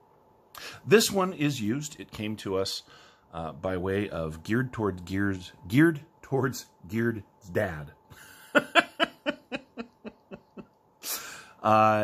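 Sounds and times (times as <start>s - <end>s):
man laughing softly: 8.1s - 11.2s.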